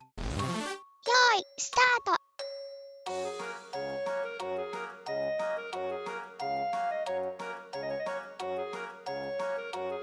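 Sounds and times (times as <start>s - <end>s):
cheerful children's music: 0.8s - 10.0s.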